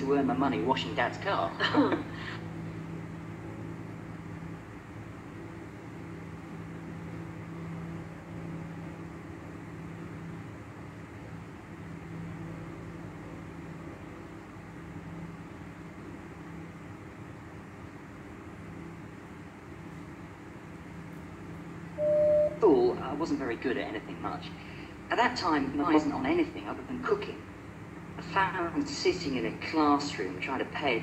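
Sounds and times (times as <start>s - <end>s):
steady hum with hiss: 0.0s - 31.0s.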